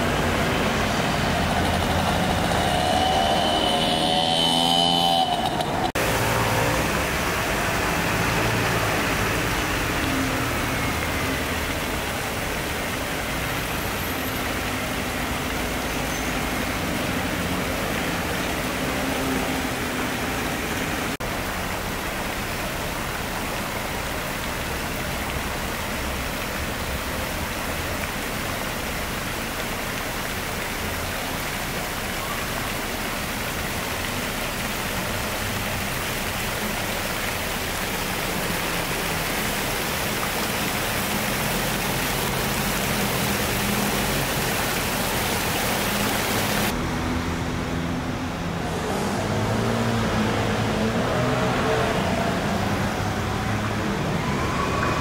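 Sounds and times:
running water rushing: 0.0s - 55.0s.

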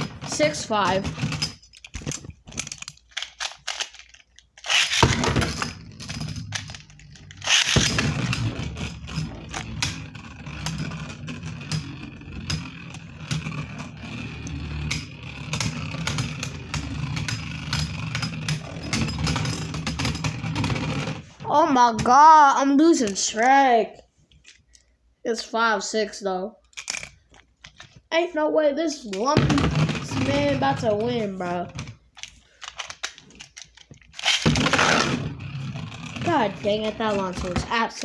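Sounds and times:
spinning tops whirring: 4.6s - 21.3s.

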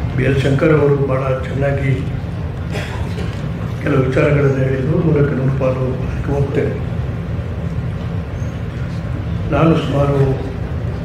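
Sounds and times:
low hum and rumble: 0.0s - 11.0s.

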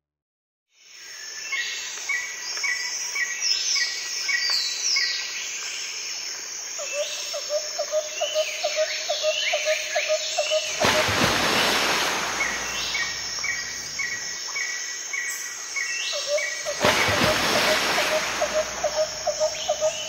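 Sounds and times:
steady hiss: 10.7s - 15.7s, 16.6s - 20.0s
birds chirping and calling: 16.1s - 20.0s.

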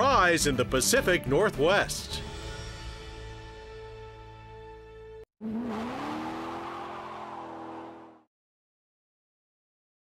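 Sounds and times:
car engine revving: 5.4s - 8.3s.

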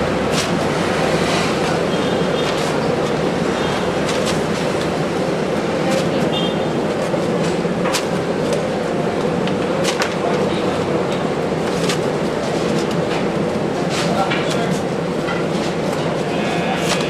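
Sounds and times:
loud background din: 0.0s - 17.0s.

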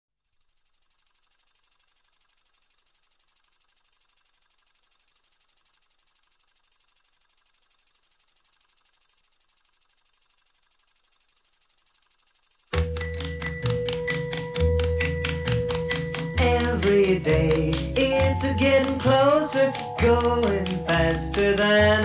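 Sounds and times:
faint fast ticking hiss: 0.2s - 22.0s.

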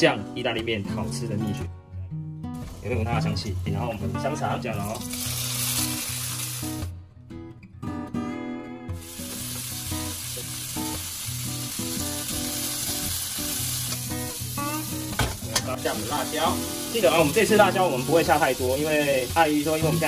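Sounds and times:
food sizzling in hot oil: 2.6s - 6.9s, 9.0s - 20.0s.

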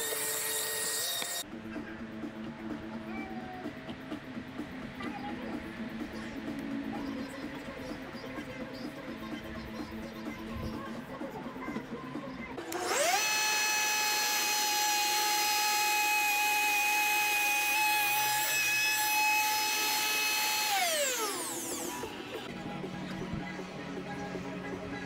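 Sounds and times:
wood router whining: 0.0s - 1.4s, 12.6s - 22.4s.

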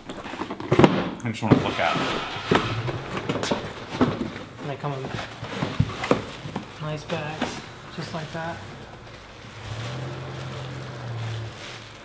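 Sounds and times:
plastic bags rustling: 1.8s - 12.0s.

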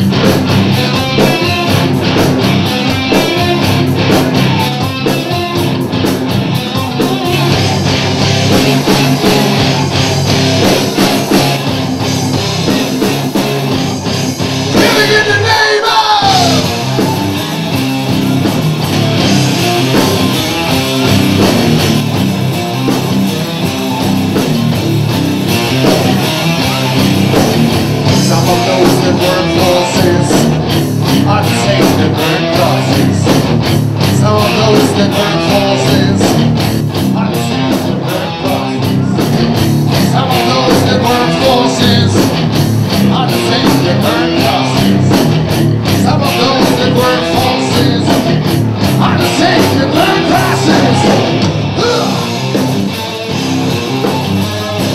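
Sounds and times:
drums keeping a steady beat: 0.0s - 54.9s
electric guitar: 0.0s - 54.9s
live rock band playing: 0.0s - 54.9s
man singing: 14.7s - 17.2s, 28.1s - 33.4s, 34.0s - 36.5s, 37.1s - 39.4s, 40.0s - 42.4s, 43.0s - 45.2s, 45.9s - 52.5s.

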